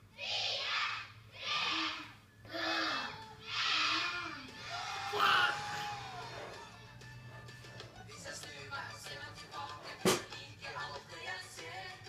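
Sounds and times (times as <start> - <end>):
children shouting numbers: 0.2 - 6.4.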